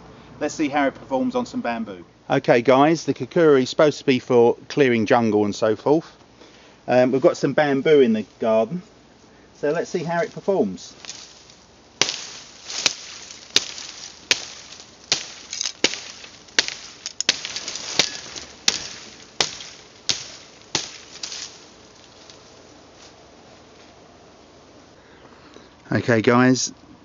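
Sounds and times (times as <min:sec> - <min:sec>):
knife chopping bamboo: 0:11.0 - 0:22.3.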